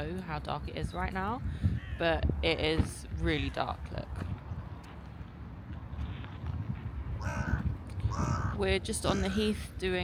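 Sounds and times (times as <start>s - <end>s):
wind rumble on microphone: 0.0s - 10.0s
crow cawing: 1.8s - 2.0s, 7.2s - 9.4s.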